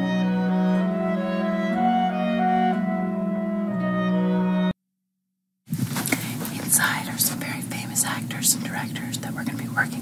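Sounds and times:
low hum of recorder noise: 5.7s - 10.0s
person whispering: 6.5s - 10.0s.

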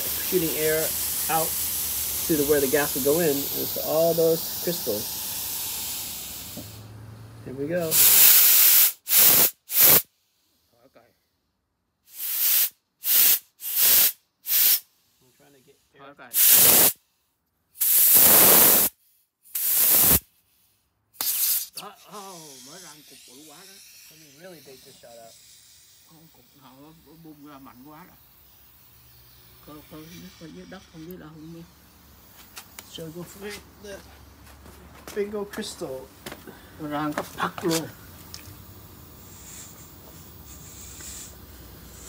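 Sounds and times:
man speaking: 0.0s - 1.5s, 2.2s - 5.0s, 21.8s - 25.3s, 33.0s - 34.1s, 35.1s - 36.2s, 36.8s - 38.0s
compressed air blasts: 0.0s - 7.2s, 7.8s - 10.6s, 12.0s - 15.3s, 16.3s - 17.1s, 17.7s - 34.4s, 35.9s - 42.0s.

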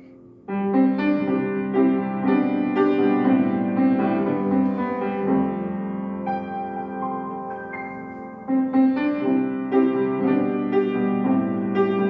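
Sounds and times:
grand piano chords and melody: 0.0s - 12.0s.

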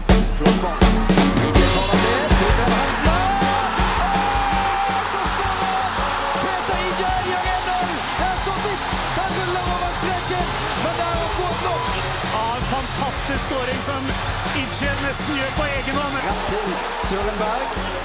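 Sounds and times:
background music: 0.0s - 18.0s
stadium crowd cheering and singing: 0.0s - 18.0s.

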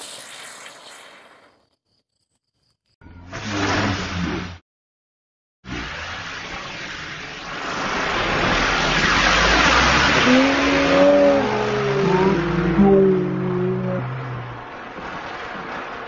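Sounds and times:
firework fizzing hiss: 0.0s - 1.6s, 6.0s - 10.3s
wavering sliding tones: 10.2s - 14.6s.

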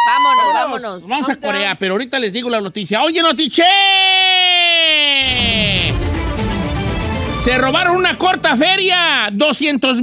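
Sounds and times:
electronic tone sliding down: 5.2s - 6.7s
music with heavy low beat: 5.2s - 7.2s.

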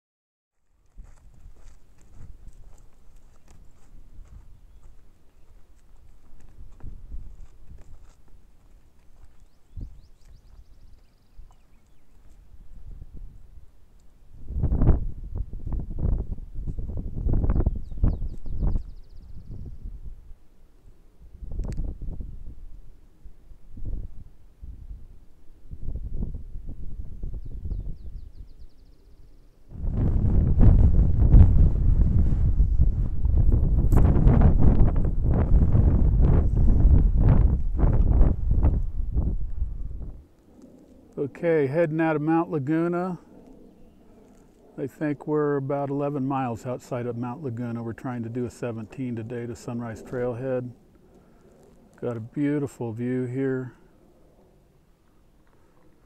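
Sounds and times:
wind buffeting microphone: 0.9s - 13.7s, 14.3s - 20.4s, 21.2s - 28.7s, 29.7s - 41.4s.

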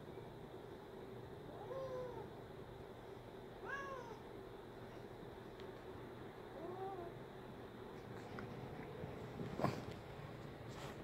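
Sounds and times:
cat meowing: 3.6s - 4.2s.

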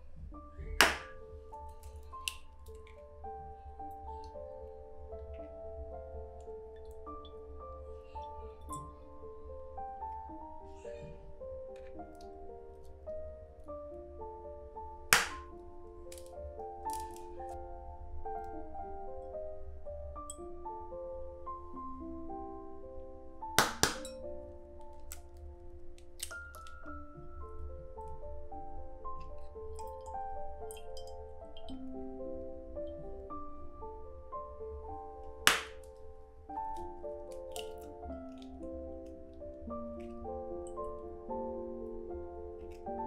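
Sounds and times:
soft instrumental music: 0.0s - 43.0s
egg cracking: 0.6s - 3.0s, 15.1s - 15.5s, 16.1s - 17.5s, 24.9s - 27.0s, 35.4s - 36.0s, 36.7s - 38.6s
eggshell clicks: 0.7s - 3.0s, 15.1s - 15.5s, 29.8s - 31.8s, 36.7s - 38.6s.

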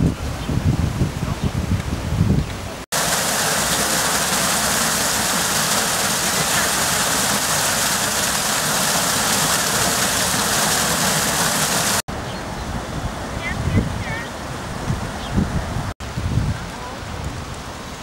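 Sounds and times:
running water rushing: 2.7s - 18.0s.

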